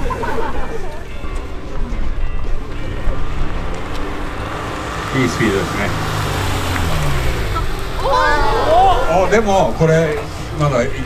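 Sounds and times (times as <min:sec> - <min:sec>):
car engine running low: 0:00.9 - 0:11.0
voices calling out oh: 0:07.3 - 0:10.6.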